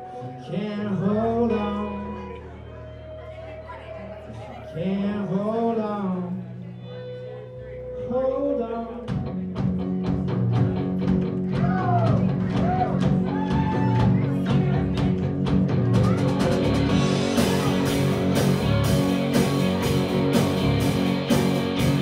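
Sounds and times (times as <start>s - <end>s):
keyboard: 0.0s - 22.0s
drum kit: 9.0s - 22.0s
electric guitars: 9.1s - 22.0s.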